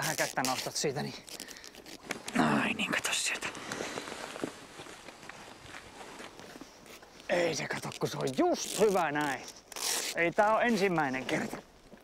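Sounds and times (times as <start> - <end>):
rustling of handling and clothing: 0.0 - 12.0.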